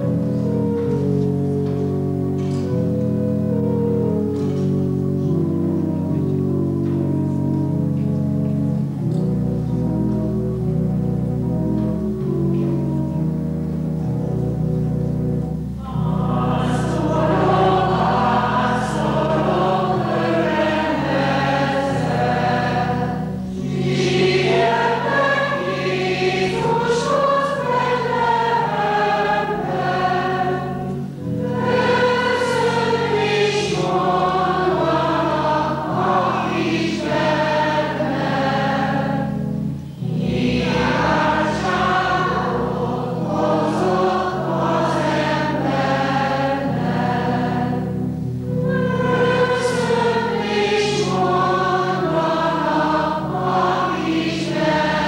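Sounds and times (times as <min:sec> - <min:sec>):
choir singing: 0:00.0 - 0:01.2, 0:15.6 - 0:55.0.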